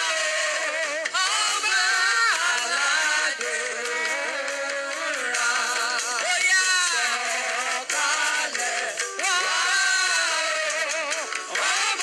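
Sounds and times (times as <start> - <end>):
congregation singing: 0.0 - 12.0.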